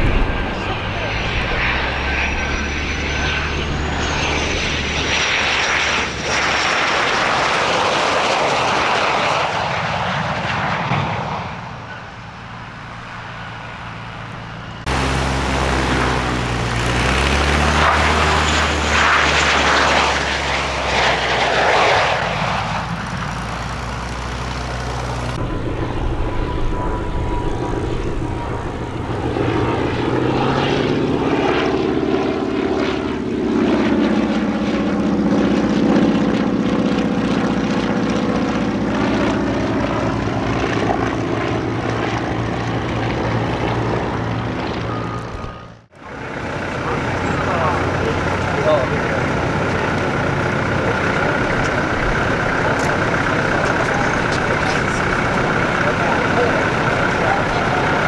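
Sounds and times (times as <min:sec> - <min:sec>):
jet roar overhead: 0:00.0 - 0:58.0
propeller plane piston engine: 0:00.0 - 0:58.0
radial-engined plane flying past: 0:00.0 - 0:58.0.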